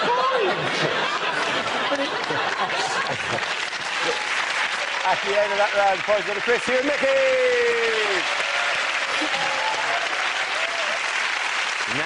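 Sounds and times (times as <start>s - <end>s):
audience applauding: 0.4s - 12.0s.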